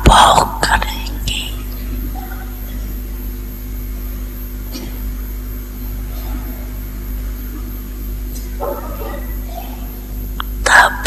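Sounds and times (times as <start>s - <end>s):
woman speaking: 0.0s - 1.8s, 10.4s - 11.0s
low hum and hiss: 0.0s - 11.0s.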